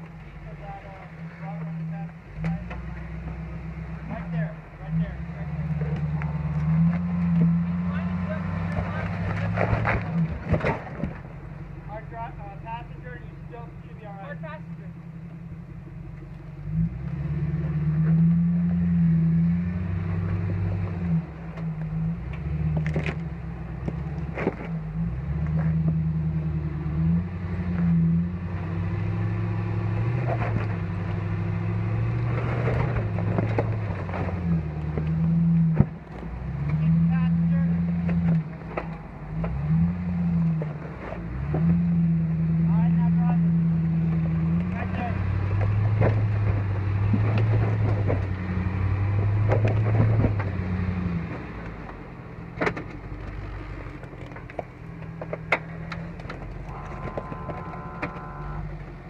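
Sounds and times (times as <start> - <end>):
engine revving under load: 0.0 - 15.0, 15.7 - 59.0.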